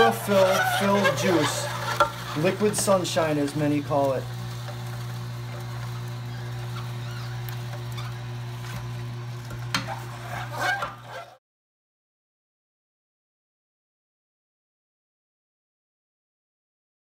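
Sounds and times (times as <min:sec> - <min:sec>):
juicer motor humming: 0:00.0 - 0:11.4
clicks and crackles: 0:04.0 - 0:11.1.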